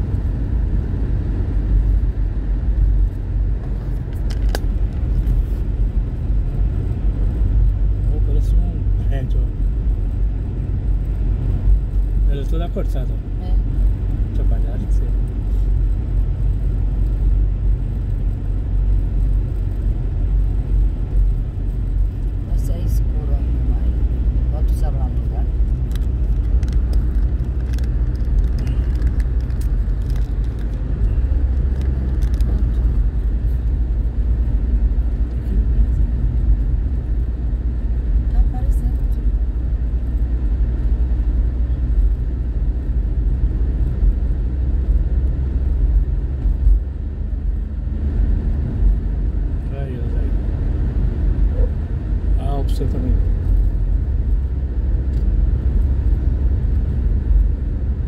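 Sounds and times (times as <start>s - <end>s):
car cabin road rumble: 0.0s - 58.0s.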